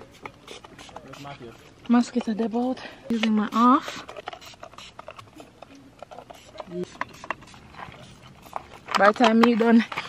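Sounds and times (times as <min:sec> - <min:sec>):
spray bottle hissing: 0:00.0 - 0:01.8, 0:02.5 - 0:08.5.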